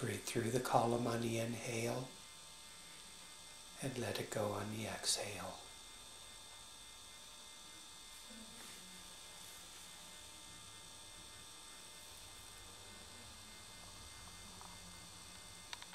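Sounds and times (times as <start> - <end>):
electrical hum: 0.0 - 15.9.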